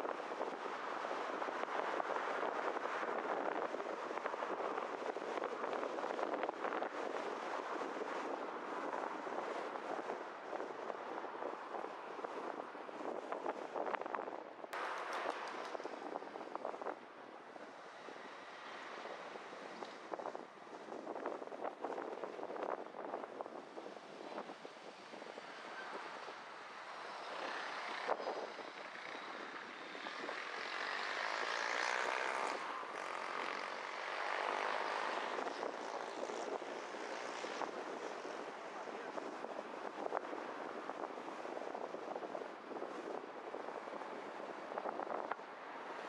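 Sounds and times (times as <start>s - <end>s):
car road and wind noise: 0.0s - 46.0s.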